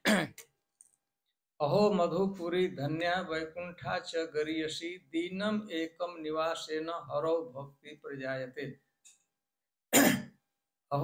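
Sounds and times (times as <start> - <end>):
man clearing his throat: 0.0 - 0.4, 9.9 - 10.4.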